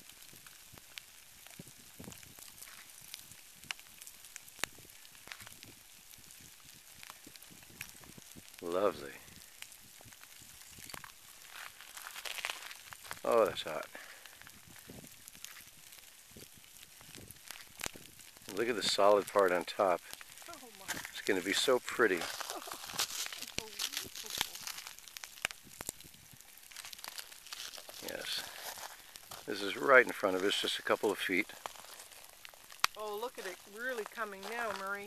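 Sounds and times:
lava crust cracking: 0.0s - 35.0s.

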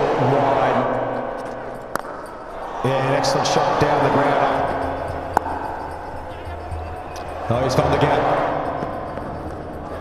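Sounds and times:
background noise: 0.0s - 10.0s
cricket bat striking ball: 5.3s - 5.6s.

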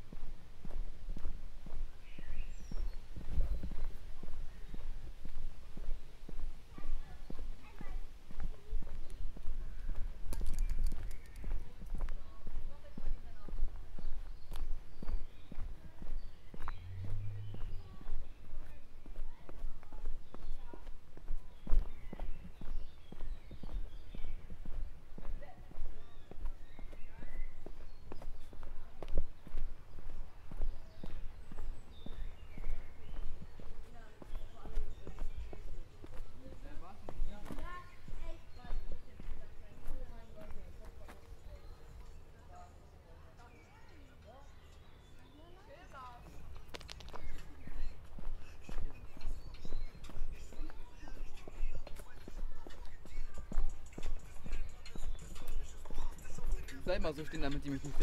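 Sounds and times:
footsteps on paved path: 0.0s - 58.0s.

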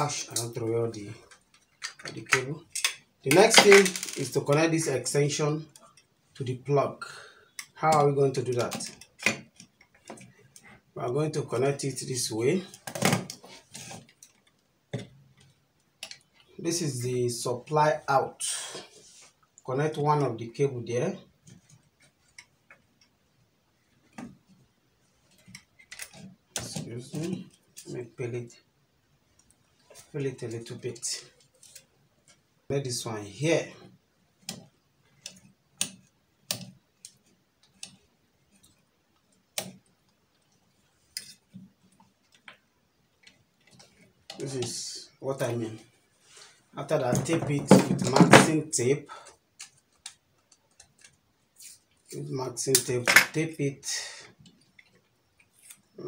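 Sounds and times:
tape rustle: 31.2s - 32.5s, 49.6s - 52.3s, 54.5s - 56.0s.

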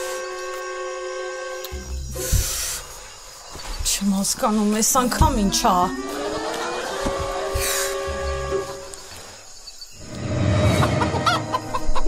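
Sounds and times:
rooster crowing: 5.9s - 9.0s, 10.7s - 12.0s
hens clucking: 10.8s - 12.0s.

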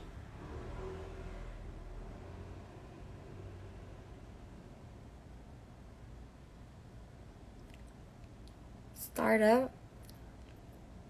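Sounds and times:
faint low hum with hiss: 0.0s - 11.0s.

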